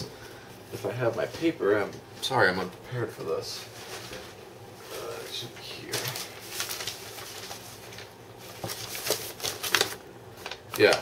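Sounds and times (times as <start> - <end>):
paper rustling: 3.4 - 11.0.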